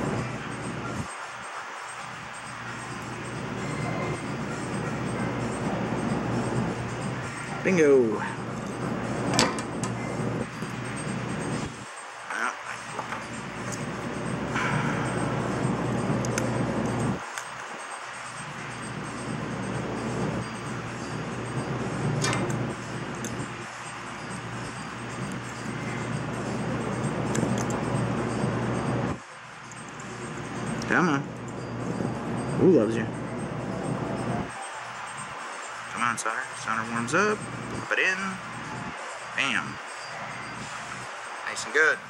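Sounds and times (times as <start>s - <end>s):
steady background noise: 0.0s - 42.0s
metal parts clicking and rattling: 22.2s - 22.6s.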